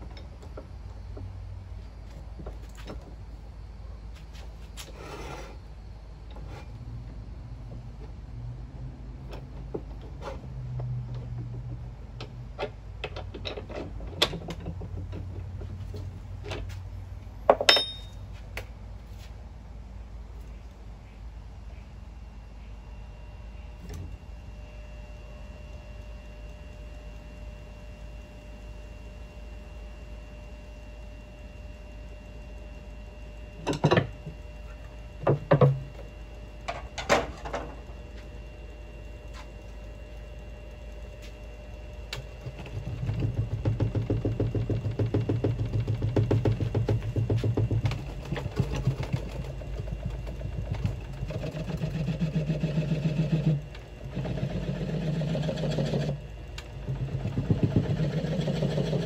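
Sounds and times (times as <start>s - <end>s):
wood lathe motor hum: 37.8s - 59.0s
gouge cutting wood rhythmically: 51.3s - 56.2s.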